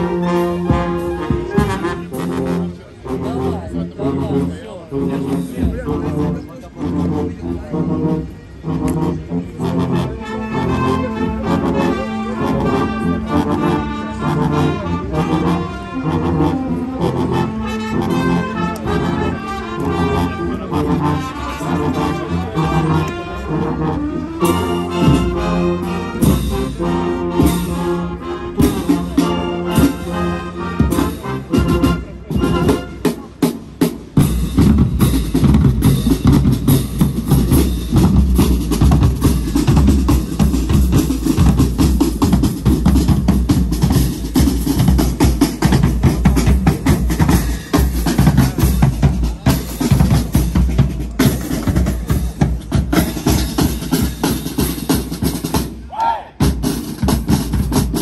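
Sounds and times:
brass band playing a march: 0.0s - 58.0s.

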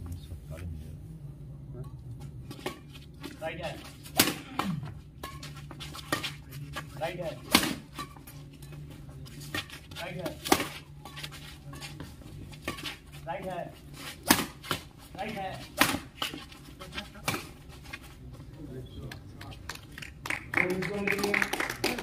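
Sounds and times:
rackets hitting shuttlecock: 2.2s - 17.6s.

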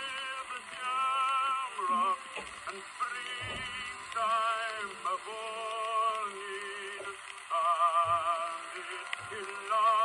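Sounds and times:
man singing a ballad: 0.0s - 10.0s.

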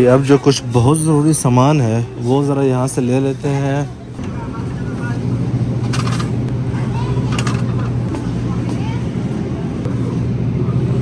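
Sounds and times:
refrigerator hum: 0.0s - 11.0s.

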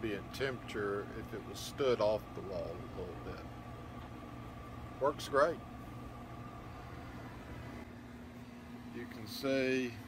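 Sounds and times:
air conditioner humming: 0.0s - 10.0s
air rushing from vents: 0.0s - 10.0s.

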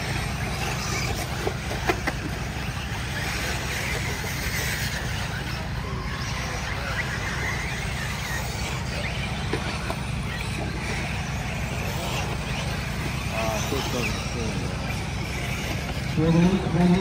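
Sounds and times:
rc car motor whine: 0.0s - 17.0s.

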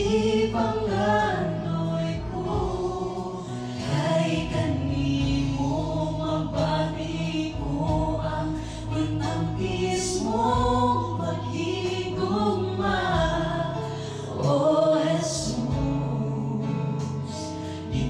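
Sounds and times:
group singing gospel in harmony: 0.0s - 18.0s
keyboard accompaniment: 0.0s - 18.0s.

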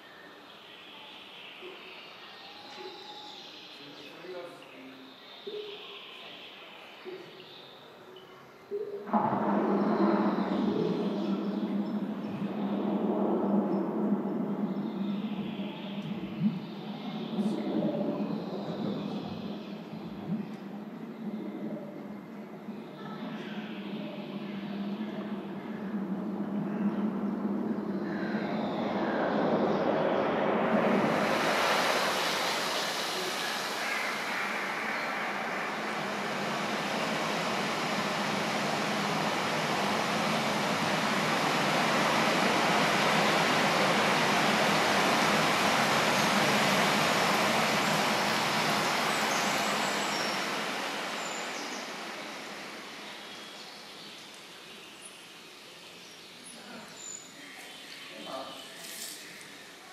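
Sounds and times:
waterfall rushing: 9.1s - 53.8s.

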